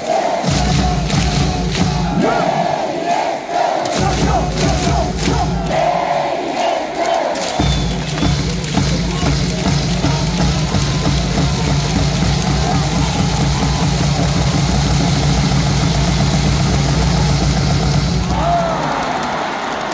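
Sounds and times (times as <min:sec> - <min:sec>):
crowd chanting and singing: 0:00.0 - 0:16.3
music from stadium loudspeakers: 0:00.1 - 0:03.0, 0:03.8 - 0:06.0, 0:06.7 - 0:19.9.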